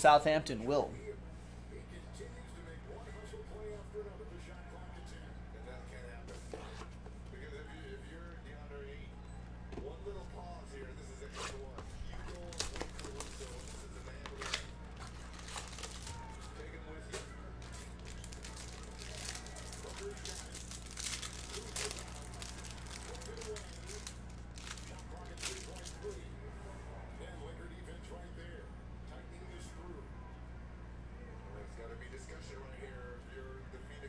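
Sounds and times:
low electrical hum: 0.0 - 34.0
foil wrapper tearing and crinkling: 12.2 - 26.2.

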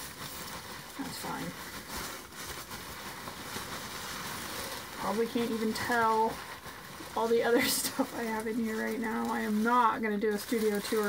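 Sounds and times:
packing material rustling: 0.0 - 11.0.

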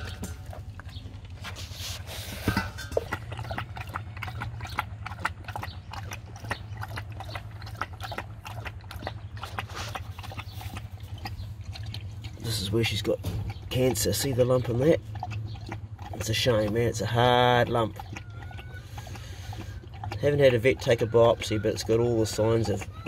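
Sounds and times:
steady low hum: 0.0 - 20.6
dog chewing and gulping: 0.0 - 23.0
dog drinking: 0.0 - 23.0.

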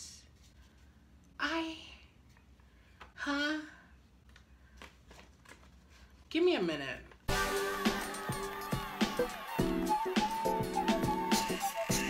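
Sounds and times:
paper card rustling and folding: 4.2 - 6.3.

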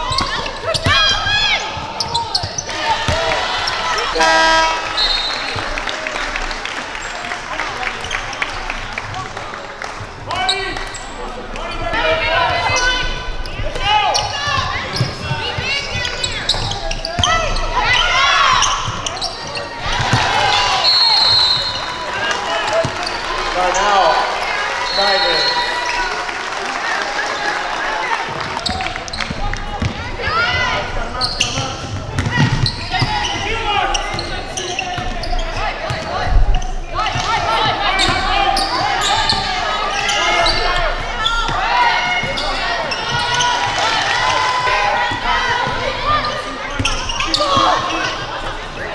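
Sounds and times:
sneakers squeaking: 0.0 - 9.2, 10.0 - 26.2, 28.3 - 48.9
players calling out: 0.0 - 48.9
referee's whistle: 4.2 - 5.7, 20.6 - 22.0, 24.8 - 26.0.

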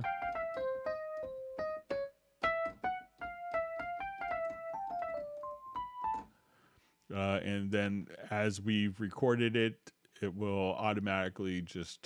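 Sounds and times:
electric piano melody: 0.0 - 6.4.

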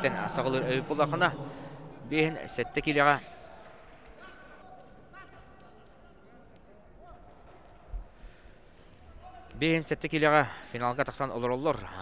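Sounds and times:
distant echoing voices: 0.0 - 4.7.

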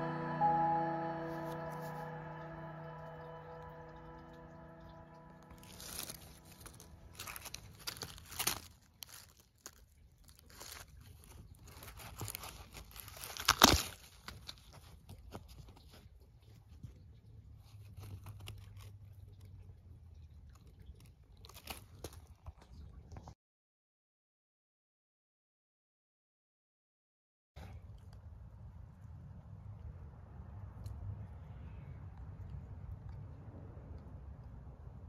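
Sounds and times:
rustling and crackling handling: 5.6 - 19.5, 20.5 - 23.3.

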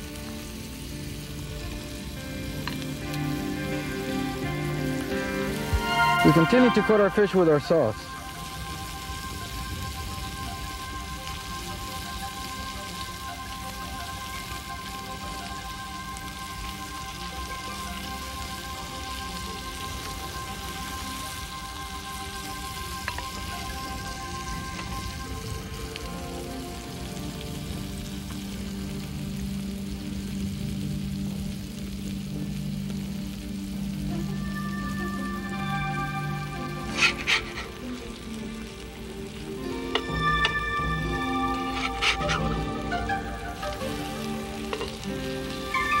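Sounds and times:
background music: 0.0 - 46.0
fish sizzling on a grill: 0.0 - 46.0.

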